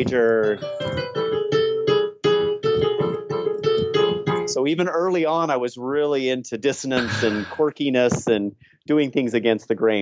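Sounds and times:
piano playing simple tune: 0.0s - 4.8s.

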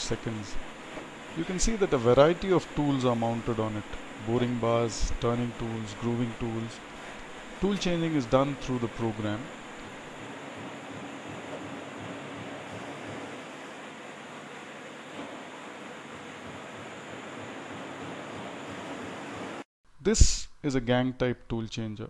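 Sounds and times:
lathe machine hiss and hum: 0.0s - 19.7s.

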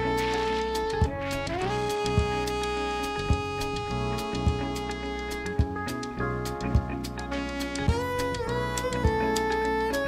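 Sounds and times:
bass: 0.0s - 10.0s
lead melody holding long notes: 0.0s - 10.0s
drum beat: 1.0s - 2.5s, 3.3s - 5.0s, 5.6s - 8.4s.

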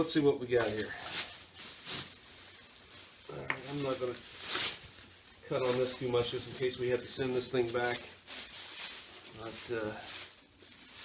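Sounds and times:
plastic bag rustling: 0.0s - 11.0s.

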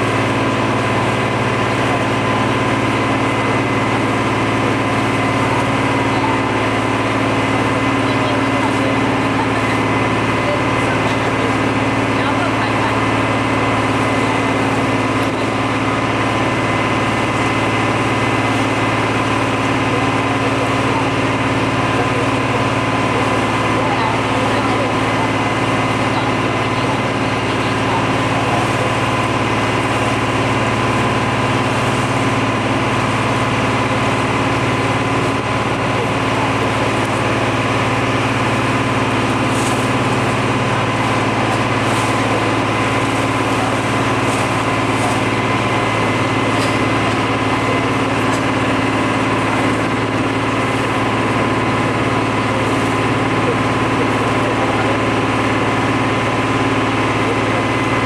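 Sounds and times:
boat engine droning: 0.0s - 58.0s
steady high whine: 0.0s - 58.0s.

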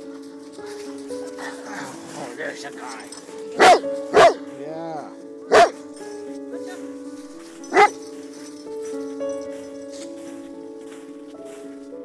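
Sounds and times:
background music of held notes: 0.0s - 12.0s
dog barking: 3.6s - 4.4s, 5.5s - 5.8s, 7.7s - 8.0s.

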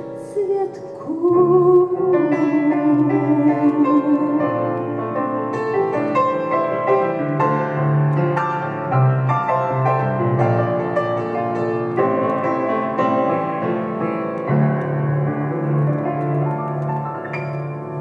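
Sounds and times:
grand piano playing: 0.0s - 18.0s.

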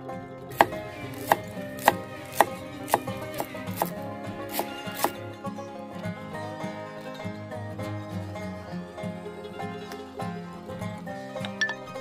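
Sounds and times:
guitar music: 0.0s - 12.0s
knife chopping herbs on wood: 0.5s - 5.2s.

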